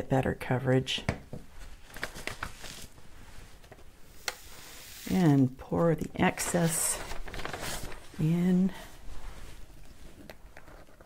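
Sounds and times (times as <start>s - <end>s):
paper sheet handling: 1.9s - 2.9s, 6.4s - 8.1s.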